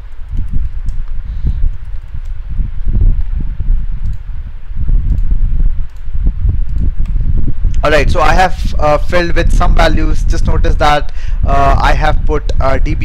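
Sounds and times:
steady low rumble: 0:00.0 - 0:13.0
mouse clicks: 0:04.0 - 0:04.2, 0:05.0 - 0:07.8.

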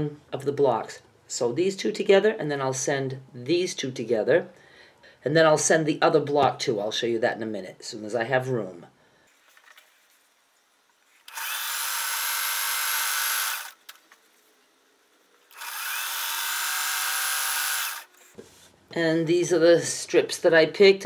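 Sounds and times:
electric sewing machine running: 0:11.3 - 0:13.8, 0:15.5 - 0:18.1.

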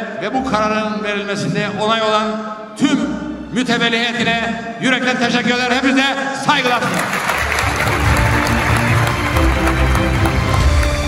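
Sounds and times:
audience applauding: 0:06.5 - 0:11.0
background music with deep bass: 0:07.2 - 0:11.0.

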